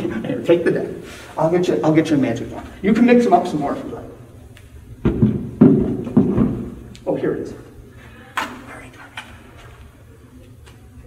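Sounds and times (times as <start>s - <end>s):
dull knocks: 5.0s - 6.8s.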